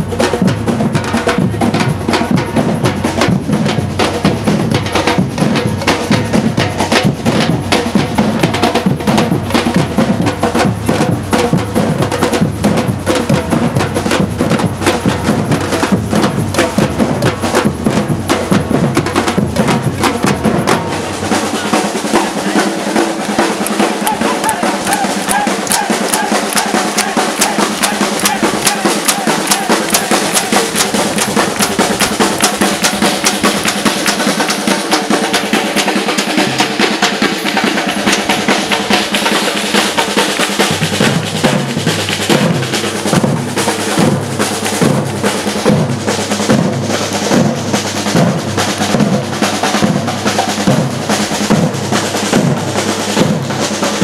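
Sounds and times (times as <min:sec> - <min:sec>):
deep bass drum beat: 0:00.0 - 0:53.6
drum ensemble playing: 0:00.0 - 0:54.0.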